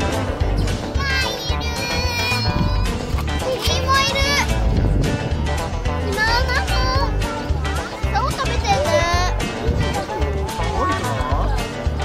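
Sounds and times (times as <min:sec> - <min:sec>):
background music with steady beat: 0:00.0 - 0:12.0
young child talking: 0:00.9 - 0:04.5, 0:06.0 - 0:07.2, 0:07.8 - 0:09.4.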